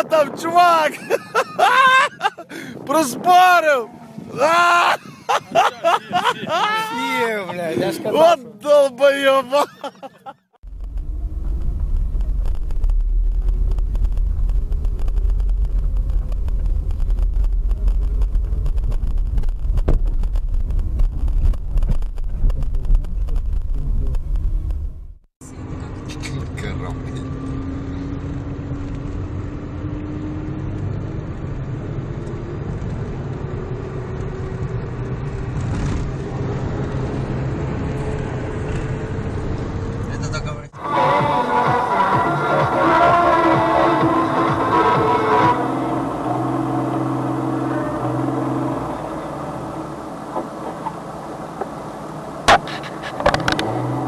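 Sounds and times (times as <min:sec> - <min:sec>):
steady whine rising in pitch: 0:10.6 - 0:19.7
car cabin engine and road rumble: 0:10.6 - 0:40.8, 0:43.4 - 0:54.0.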